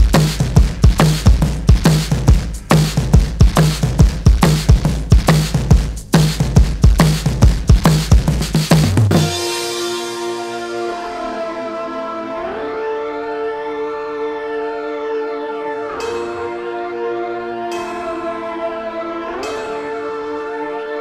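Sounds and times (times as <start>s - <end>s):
drum beat: 0.0s - 10.2s
sustained string-like chords: 9.2s - 21.0s.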